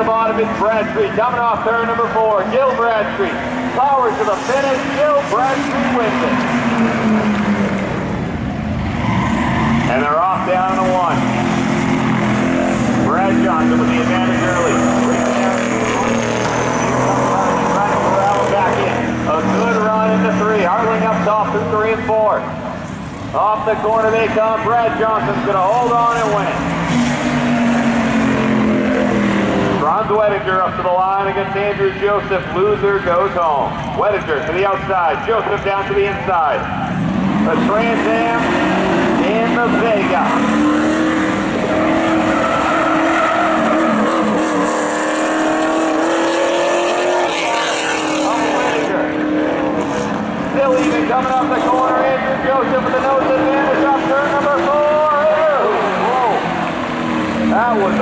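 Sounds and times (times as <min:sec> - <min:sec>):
racing car engines: 0:00.0 - 0:58.0
person talking: 0:57.5 - 0:58.0.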